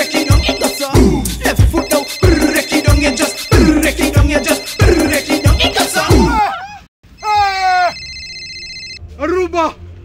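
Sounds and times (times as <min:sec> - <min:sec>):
high electronic tone: 0:00.0 - 0:06.4
short vocal cry: 0:05.9 - 0:08.0.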